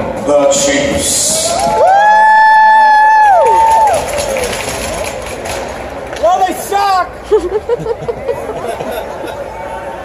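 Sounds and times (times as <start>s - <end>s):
crowd cheering: 1.0s - 10.0s.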